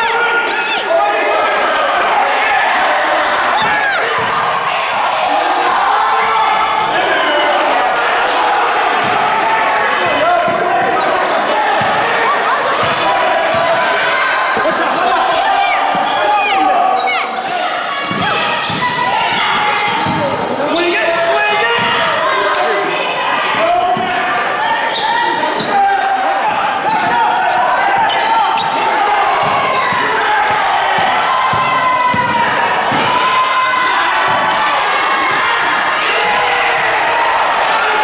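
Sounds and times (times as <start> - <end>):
people shouting and talking: 0.0 - 38.0
basketball bouncing on wooden court: 12.8 - 13.8, 15.9 - 16.2, 18.0 - 20.5, 21.8 - 22.0, 29.4 - 33.0.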